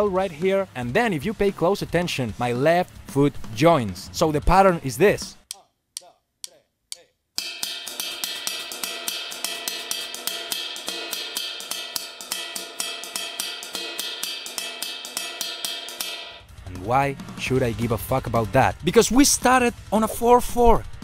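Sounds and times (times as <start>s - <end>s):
drum kit playing: 0.0s - 5.5s, 7.4s - 21.0s
cowbell pattern: 7.4s - 17.0s.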